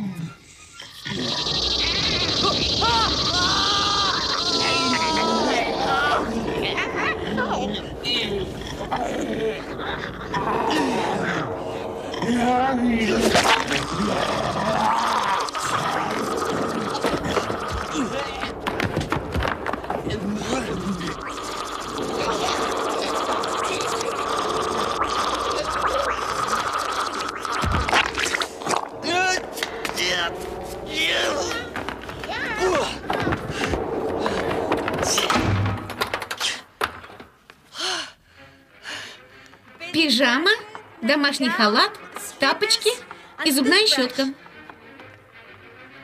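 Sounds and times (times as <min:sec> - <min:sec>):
wordless cries and shouts: 0:00.0 - 0:35.4
horror film music: 0:00.5 - 0:36.0, 0:37.8 - 0:46.0.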